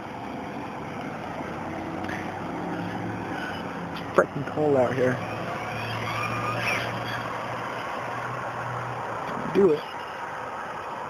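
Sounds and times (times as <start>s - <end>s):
faint high whine: 0.0s - 11.0s
vehicle engine humming: 0.0s - 11.0s.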